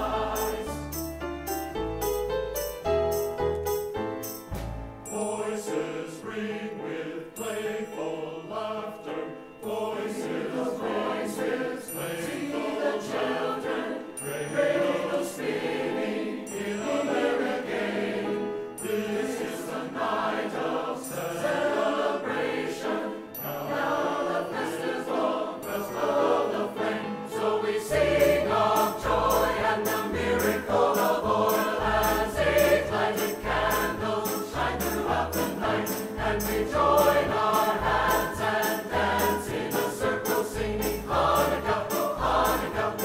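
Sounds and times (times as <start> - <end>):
choir singing with instruments: 0.0 - 1.2, 4.3 - 43.0
rhythmic bass line and percussion: 0.0 - 5.0, 28.0 - 43.0.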